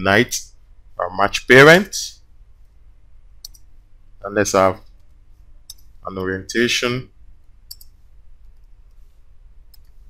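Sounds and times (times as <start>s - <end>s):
faint low hum: 0.0s - 10.0s
computer mouse click: 3.4s - 3.7s, 4.9s - 5.9s, 7.7s - 9.0s, 9.7s - 10.0s.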